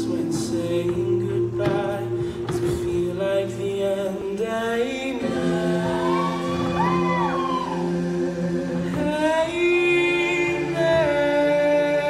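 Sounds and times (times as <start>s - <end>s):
choir-like wordless vocals: 0.0s - 12.0s.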